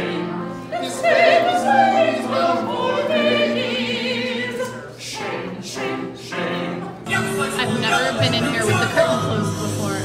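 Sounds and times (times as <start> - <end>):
opera singers singing: 0.0 - 10.0.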